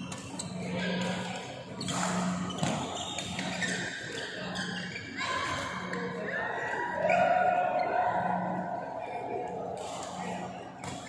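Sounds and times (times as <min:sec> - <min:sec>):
shoes squeaking on court: 0:01.8 - 0:05.2.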